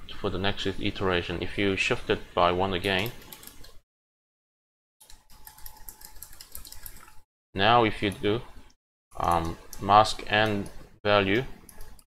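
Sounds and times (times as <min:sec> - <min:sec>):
keyboard typing: 0:02.9 - 0:03.8, 0:05.0 - 0:07.2.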